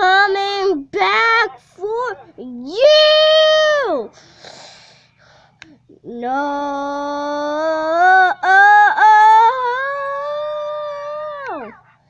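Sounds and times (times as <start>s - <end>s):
breathy hiss: 4.1s - 5.8s
child singing high note: 6.7s - 11.7s.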